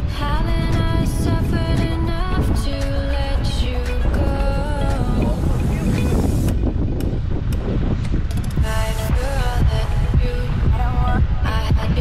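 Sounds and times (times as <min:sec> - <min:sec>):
background music: 0:00.0 - 0:12.0
wind buffeting microphone: 0:00.0 - 0:12.0.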